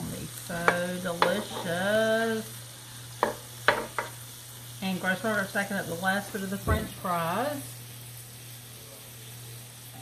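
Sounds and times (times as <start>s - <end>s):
food frying in hot fat: 0.0s - 10.0s.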